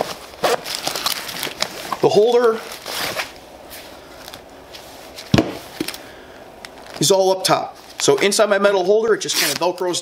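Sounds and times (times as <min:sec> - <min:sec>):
soft rustling: 0:00.0 - 0:05.8.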